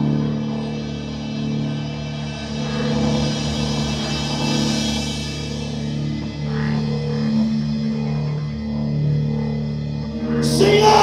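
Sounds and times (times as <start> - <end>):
rock band electric guitar and bass: 0.0 - 11.0.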